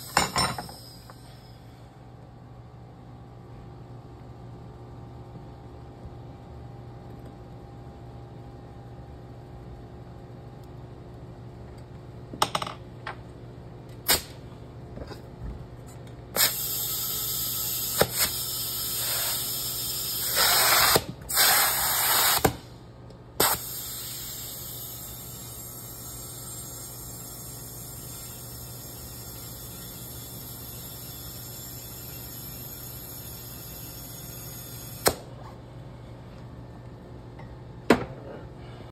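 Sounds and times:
compressed air hissing: 0:16.4 - 0:22.6, 0:23.4 - 0:27.4.

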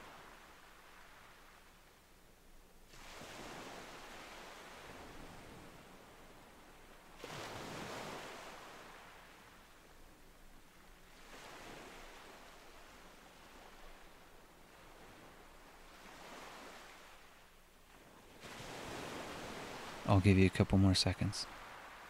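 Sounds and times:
ocean waves washing in: 0:02.9 - 0:22.0.

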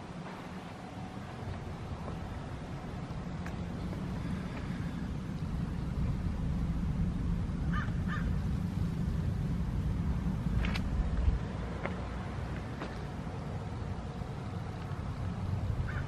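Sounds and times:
steady low rumble: 0:00.0 - 0:16.0
bird calling: 0:07.7 - 0:08.4.

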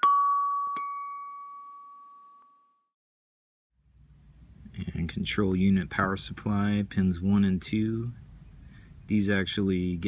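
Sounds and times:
chime tone ringing: 0:00.0 - 0:02.9
faint room noise: 0:03.8 - 0:10.0.

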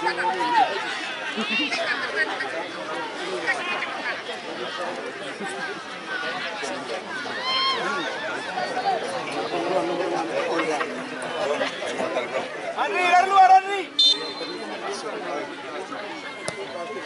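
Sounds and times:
loud shout: 0:00.0 - 0:01.9, 0:07.2 - 0:09.0
spectators chattering and calling out: 0:00.0 - 0:17.0.

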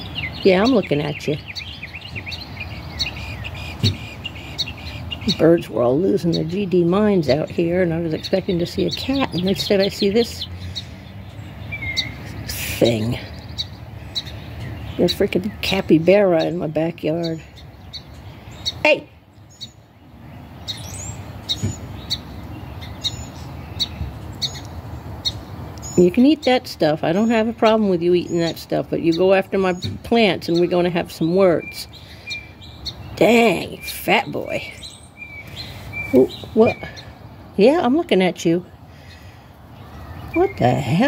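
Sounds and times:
small birds chirping: 0:00.0 - 0:41.0.

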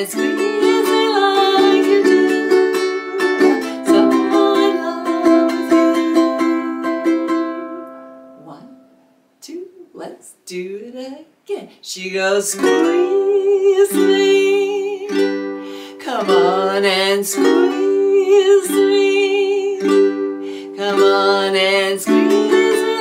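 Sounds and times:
woman singing: 0:00.0 - 0:08.8, 0:09.4 - 0:23.0
ukulele strumming: 0:00.0 - 0:09.0, 0:12.2 - 0:23.0.

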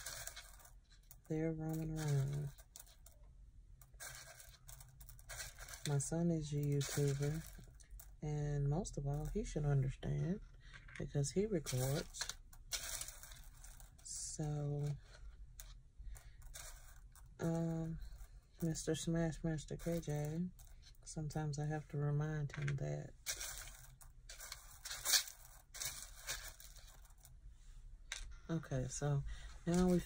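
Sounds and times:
rhinestones rustling and clicking: 0:00.0 - 0:30.0.

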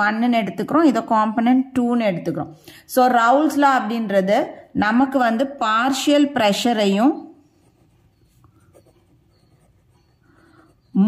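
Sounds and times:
ballpoint pen scratching on paper: 0:07.4 - 0:11.0.

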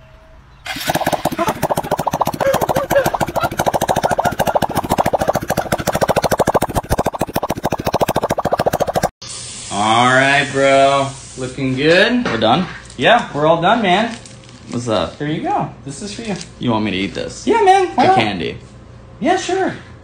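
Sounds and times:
balloon on exhaust buzzing rattle: 0:00.7 - 0:09.1.

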